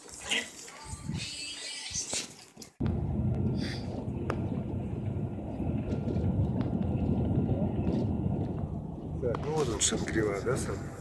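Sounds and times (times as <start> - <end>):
bus engine and road noise: 2.8 - 11.0.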